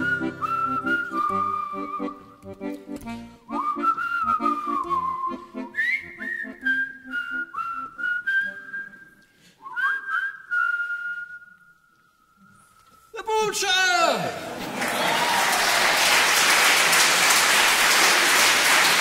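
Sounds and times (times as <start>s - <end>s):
whistle melody: 0.0s - 2.4s, 3.5s - 13.1s.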